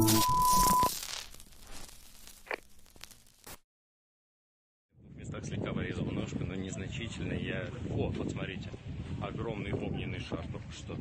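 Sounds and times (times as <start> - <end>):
high electronic beep: 0.0 - 1.0
faint crackles: 0.0 - 3.6.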